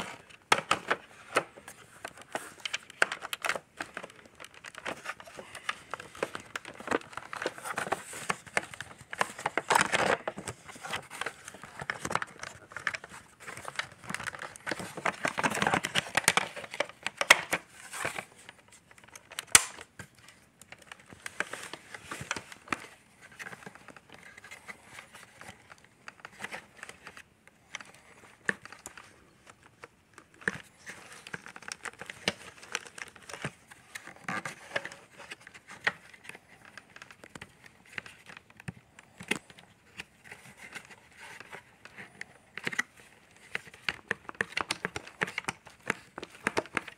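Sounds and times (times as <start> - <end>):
plastic parts rustling and clicking: 0.0 - 46.9.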